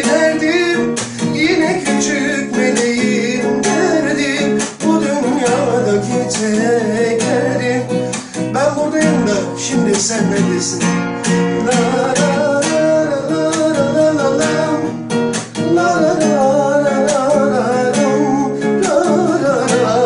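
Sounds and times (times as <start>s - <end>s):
acoustic guitar ballad: 0.0s - 20.0s
man singing: 0.0s - 20.0s.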